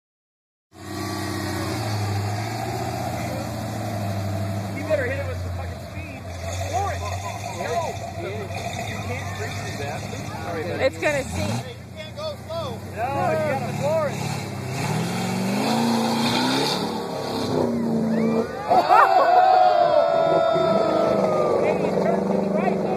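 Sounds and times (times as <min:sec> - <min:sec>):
car engine running at low revs: 0:00.8 - 0:18.6, 0:20.2 - 0:22.9.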